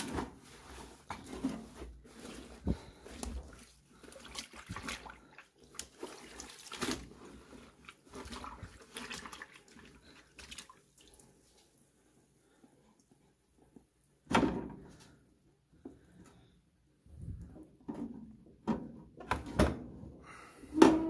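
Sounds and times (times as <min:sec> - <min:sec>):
water sloshing and splashing: 0:00.0 - 0:13.2.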